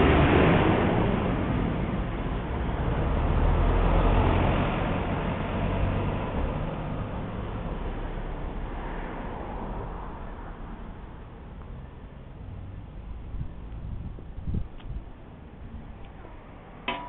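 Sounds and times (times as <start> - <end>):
road traffic rumbling: 0.0 - 17.0.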